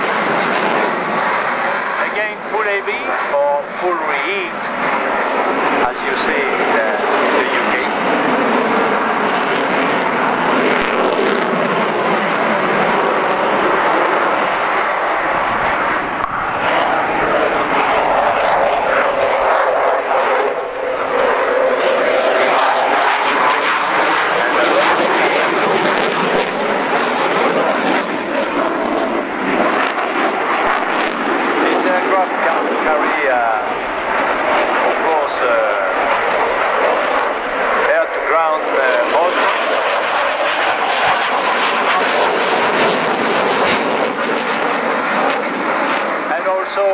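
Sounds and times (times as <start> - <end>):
jet engines roaring: 0.0 - 46.9.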